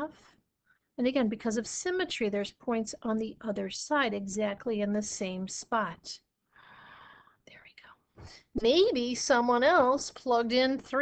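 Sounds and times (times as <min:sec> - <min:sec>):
soft breath: 0:06.5 - 0:08.5.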